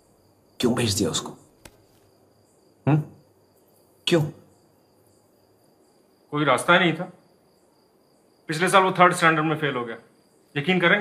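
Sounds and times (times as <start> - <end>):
crickets trilling: 0.0 - 11.0
person speaking: 0.6 - 1.4.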